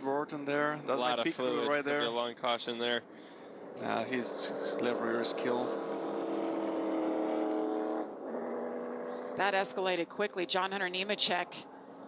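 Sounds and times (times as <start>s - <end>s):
race car engines droning: 0.7s - 12.0s.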